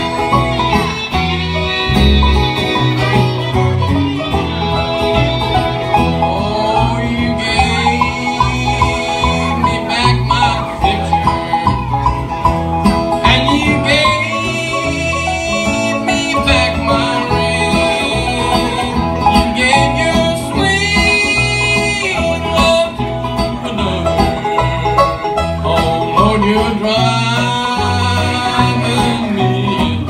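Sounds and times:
electric guitars: 0:00.0 - 0:30.0
steady bass line: 0:00.0 - 0:30.0
strummed acoustic guitar: 0:00.0 - 0:30.0.

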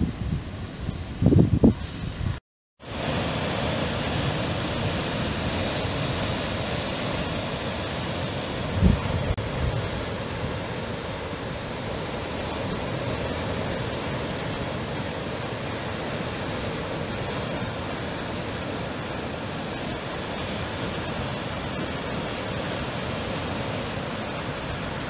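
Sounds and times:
wind on microphone: 0:00.0 - 0:25.0
surf breaking over rocks: 0:02.8 - 0:25.0.

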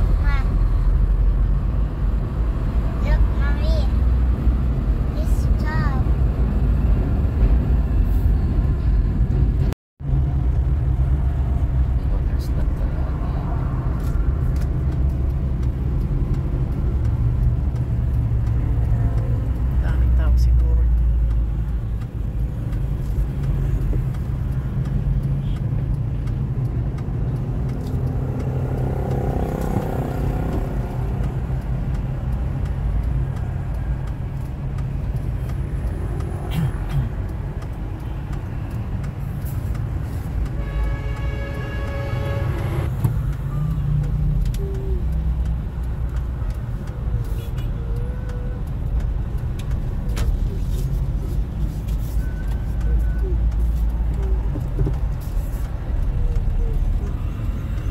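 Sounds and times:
vehicle engine and road rumble: 0:00.0 - 0:57.9.

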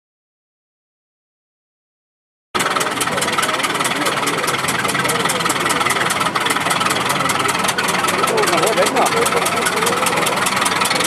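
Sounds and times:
engine knocking rapidly: 0:02.6 - 0:11.0.

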